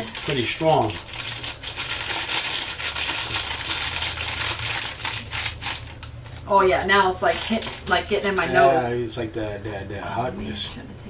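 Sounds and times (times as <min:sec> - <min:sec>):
foil sachets crinkling: 0:00.0 - 0:08.7.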